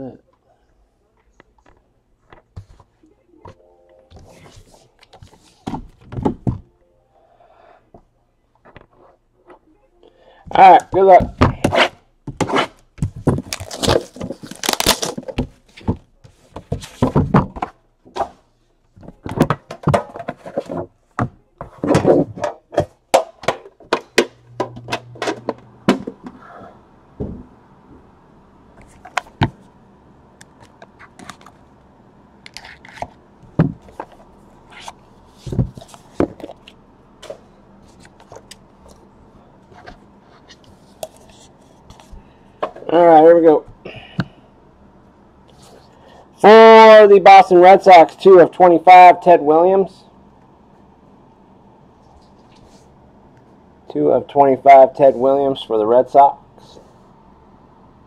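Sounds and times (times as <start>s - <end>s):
faint low hum: 0.0s - 58.0s
faint room noise: 0.0s - 58.0s.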